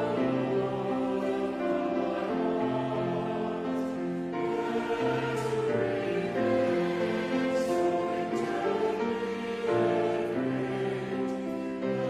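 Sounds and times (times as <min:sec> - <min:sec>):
choir singing in harmony: 0:00.0 - 0:12.0
grand piano accompaniment: 0:00.0 - 0:12.0.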